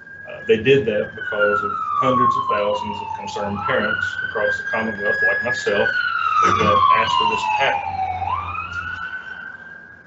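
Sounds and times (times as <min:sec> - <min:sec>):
wailing siren: 0:00.0 - 0:10.0.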